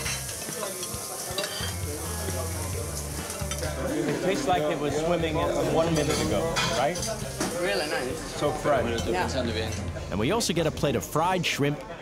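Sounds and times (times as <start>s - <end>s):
cutlery scraping on plates: 0.0s - 1.8s, 6.0s - 7.6s
steady sizzling hiss: 0.0s - 10.5s.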